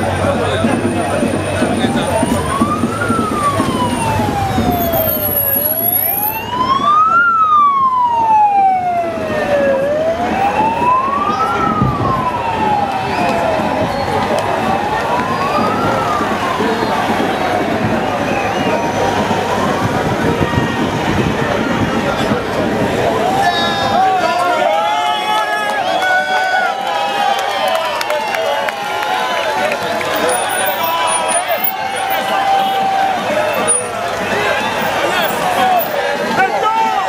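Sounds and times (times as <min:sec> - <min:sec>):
vehicles driving past: 0:00.0 - 0:24.7, 0:27.8 - 0:37.0
street and crowd noise: 0:00.0 - 0:37.0
siren wailing: 0:00.7 - 0:22.5, 0:30.0 - 0:36.0
higher siren sweeping: 0:01.6 - 0:20.0.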